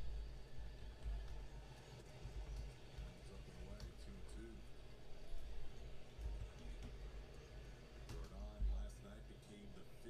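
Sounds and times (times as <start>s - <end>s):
faint commentator speech: 1.0s - 10.0s.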